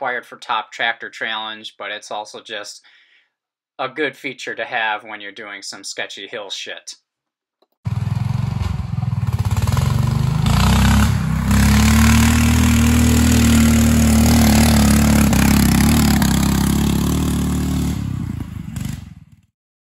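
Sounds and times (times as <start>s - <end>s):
single-cylinder engine running: 7.9s - 19.3s.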